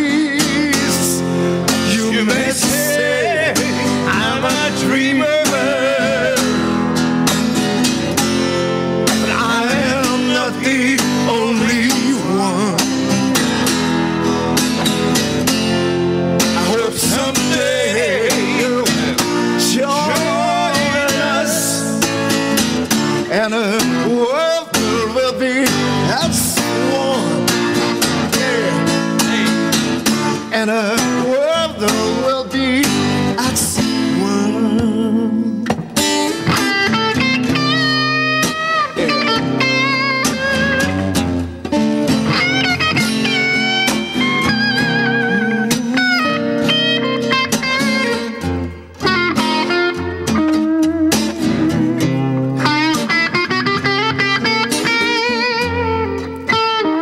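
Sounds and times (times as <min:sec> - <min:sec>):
men singing together: 0:00.0 - 0:06.9, 0:09.2 - 0:12.8, 0:16.5 - 0:22.1, 0:23.3 - 0:29.8
acoustic guitar: 0:00.0 - 0:57.0
electric guitar: 0:00.0 - 0:57.0.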